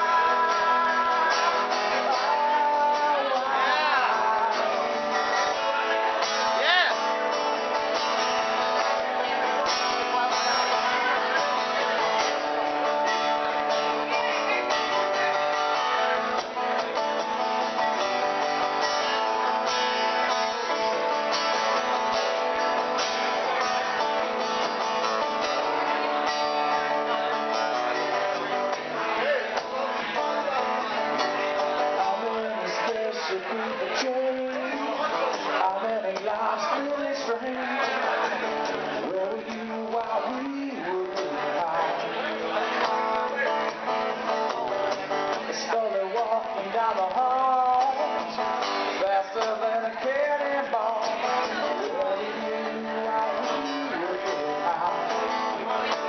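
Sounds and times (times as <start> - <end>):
acoustic guitar strumming: 0.0 - 56.0.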